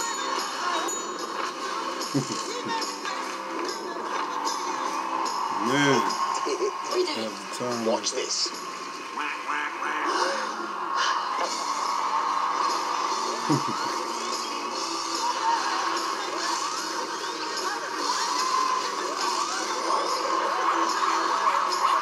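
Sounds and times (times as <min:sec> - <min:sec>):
music: 0:00.0 - 0:22.0
noisy crowd: 0:00.0 - 0:22.0
voices from television: 0:00.0 - 0:22.0.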